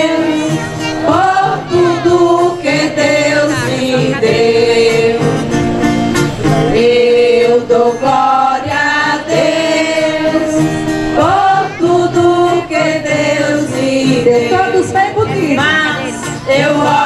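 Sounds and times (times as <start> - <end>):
choir singing a hymn: 0.0 - 17.0
instrumental accompaniment: 0.0 - 17.0.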